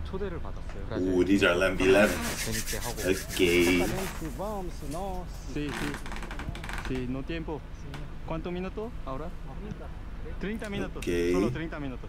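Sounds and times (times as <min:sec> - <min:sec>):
man talking: 0:01.0 - 0:05.9, 0:10.7 - 0:11.7
palms rubbing together: 0:01.2 - 0:06.2, 0:10.8 - 0:11.6.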